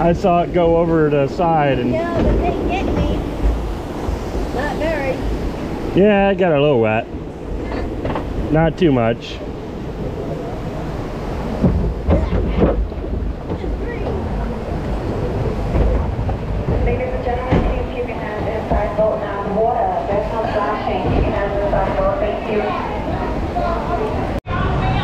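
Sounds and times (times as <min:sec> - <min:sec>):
boat rumbling along water trough: 0:00.0 - 0:25.0
people's voices: 0:00.0 - 0:25.0
hull knocking on channel: 0:09.8 - 0:21.8.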